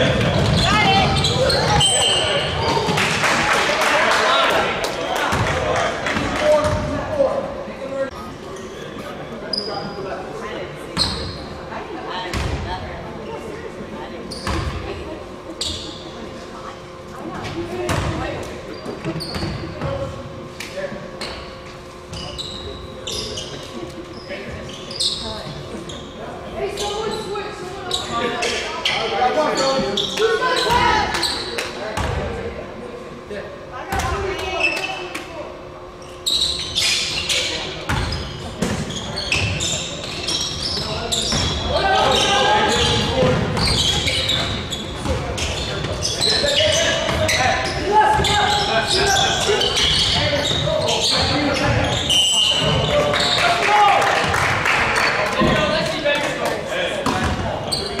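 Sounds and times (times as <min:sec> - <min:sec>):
basketball bouncing on court: 0:05.3 - 0:05.6, 0:12.3 - 0:12.6, 0:17.9 - 0:18.2, 0:57.0 - 0:57.4.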